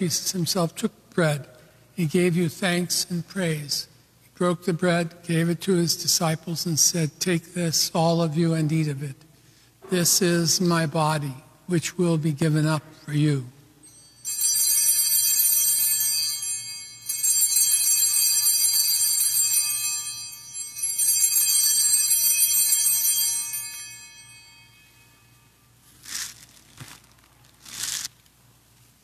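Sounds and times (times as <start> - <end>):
altar bells ringing: 13.7 - 25.8.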